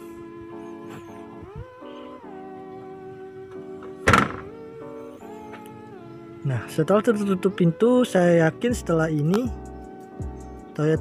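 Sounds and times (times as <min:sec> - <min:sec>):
background music: 0:00.0 - 0:11.0
car tailgate thunking shut: 0:03.8 - 0:04.6.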